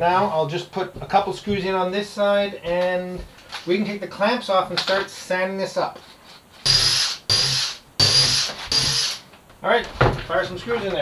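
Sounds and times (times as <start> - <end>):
cordless drill motor whining: 6.7 - 9.2.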